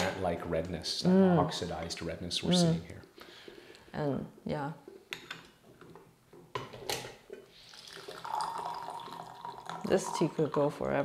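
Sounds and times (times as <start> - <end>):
tea pouring into glass pitcher: 7.5 - 11.0.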